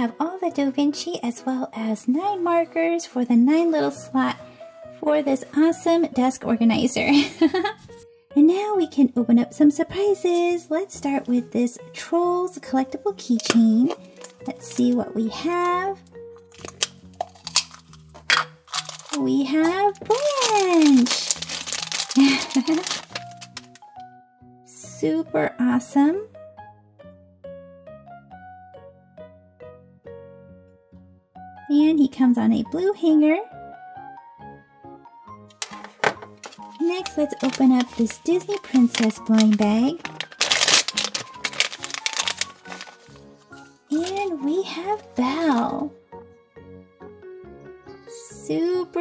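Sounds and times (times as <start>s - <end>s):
soft background music: 0.0s - 49.0s
plastic capsule clicks: 13.4s - 14.9s, 16.4s - 19.2s, 20.0s - 23.9s, 35.5s - 42.9s
plastic bag crinkling: 16.4s - 19.3s, 19.9s - 23.9s, 35.6s - 43.3s, 43.9s - 44.4s.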